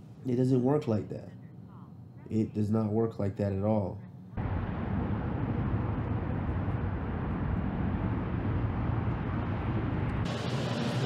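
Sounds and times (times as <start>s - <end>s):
bright indoor background noise: 0.0s - 4.4s
low outdoor rumble: 0.0s - 11.0s.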